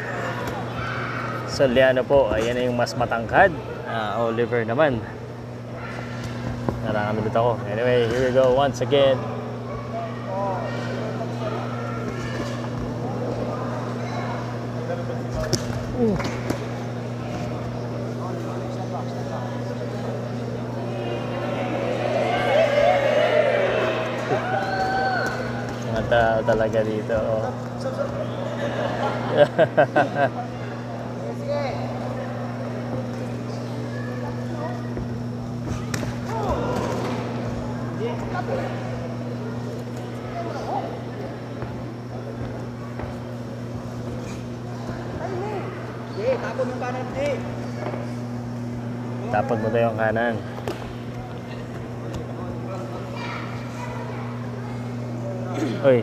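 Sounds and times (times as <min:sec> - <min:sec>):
crowd voices and murmur: 0:00.0 - 0:56.0
steady low hum: 0:00.0 - 0:56.0
people shouting: 0:20.9 - 0:25.6, 0:36.2 - 0:37.1.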